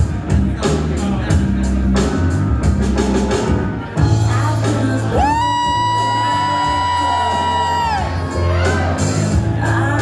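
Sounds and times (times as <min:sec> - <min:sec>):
music with steady bass line: 0:00.0 - 0:10.0
high whoo cry: 0:05.2 - 0:08.9.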